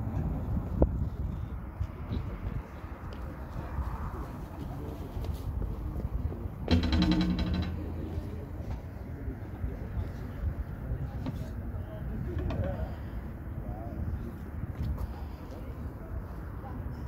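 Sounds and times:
wind buffeting microphone: 0:00.0 - 0:17.0
low steady pitched tone: 0:06.6 - 0:09.8.

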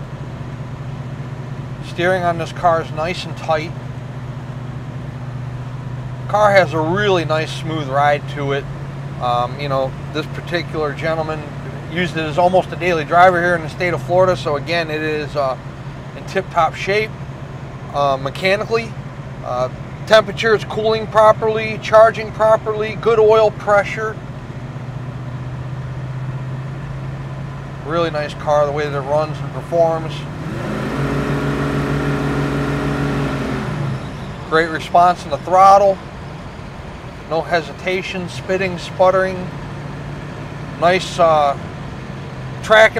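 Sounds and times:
car engine humming: 0:00.0 - 0:42.9
road noise: 0:00.0 - 0:42.9.

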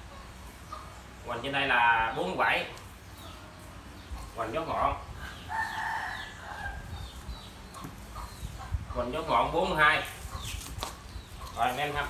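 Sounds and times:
rooster crowing: 0:05.2 - 0:07.0.

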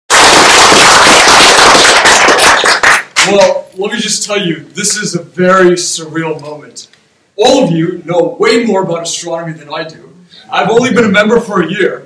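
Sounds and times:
audience applauding: 0:00.1 - 0:03.4.

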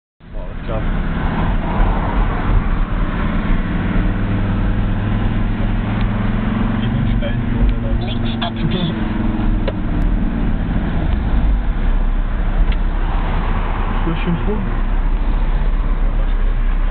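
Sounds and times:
car engine and road noise: 0:00.2 - 0:16.9.

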